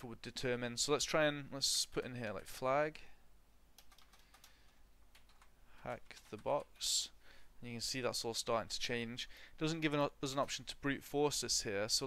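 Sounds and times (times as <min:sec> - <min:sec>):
computer keyboard key taps: 0:03.8 - 0:04.5.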